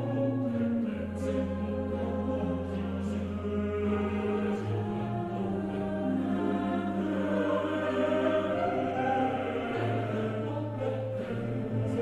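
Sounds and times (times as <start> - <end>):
choir singing long chords: 0.0 - 12.0.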